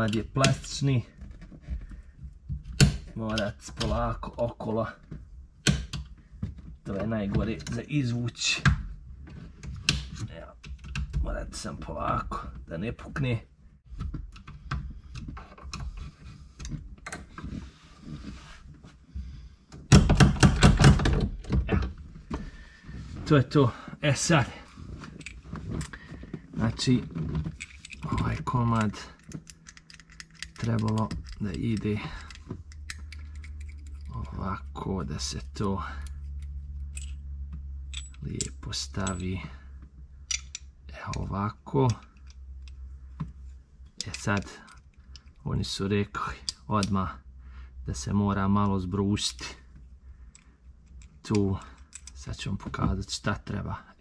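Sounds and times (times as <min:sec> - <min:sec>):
small metal parts clicking: 0:27.5 - 0:34.4, 0:37.9 - 0:39.4, 0:40.2 - 0:41.3, 0:50.2 - 0:52.3.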